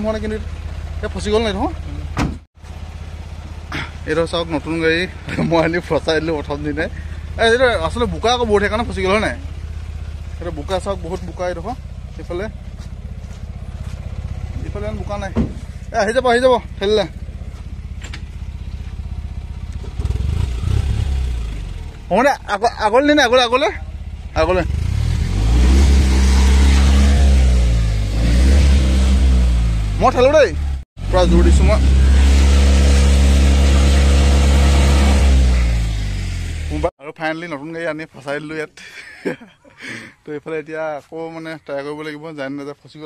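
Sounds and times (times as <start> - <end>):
truck engine idling: 0.0 - 28.2.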